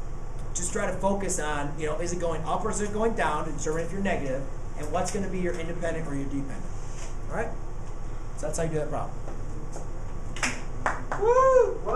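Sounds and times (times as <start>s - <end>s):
low room hum: 0.0s - 11.9s
sharp snap: 10.4s - 10.7s.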